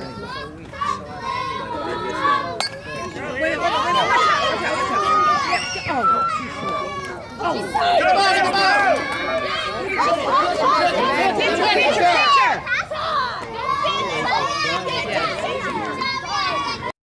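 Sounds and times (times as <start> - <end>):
babble of high-pitched voices: 0.0 - 16.9.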